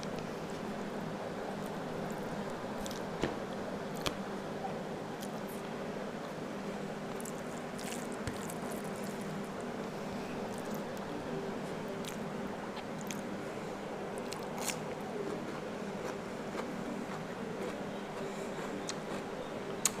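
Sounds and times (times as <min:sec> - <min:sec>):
steady low hum: 0:00.0 - 0:20.0
fingers squishing rice: 0:07.1 - 0:09.6
chewing with wet mouth clicks: 0:12.8 - 0:13.2.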